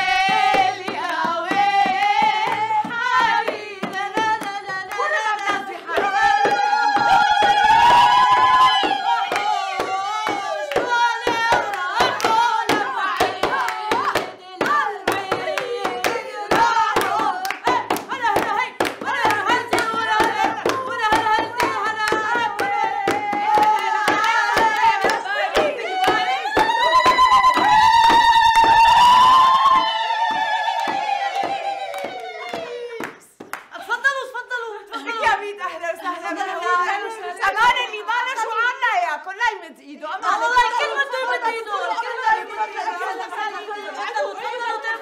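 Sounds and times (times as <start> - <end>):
frame drum beating: 0.0 - 32.6
rhythmic hand clapping: 0.0 - 34.2
women singing together: 0.0 - 45.0.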